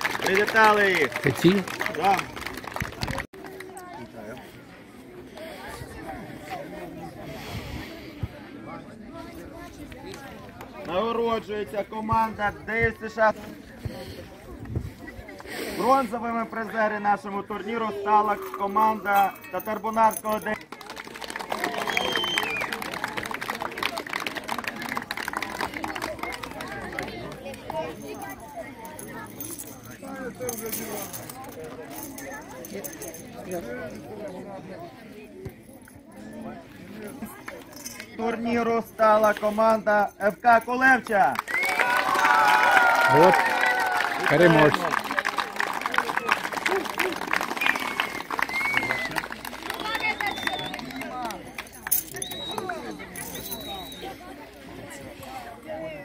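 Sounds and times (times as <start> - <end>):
crowd clapping: 0.0 - 4.1, 20.3 - 27.9, 41.1 - 52.9
voices chattering: 0.0 - 41.6, 43.9 - 56.0.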